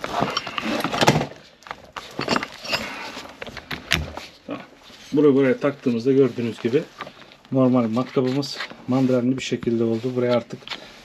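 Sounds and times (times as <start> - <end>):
tool handling rattles: 0.0 - 4.4.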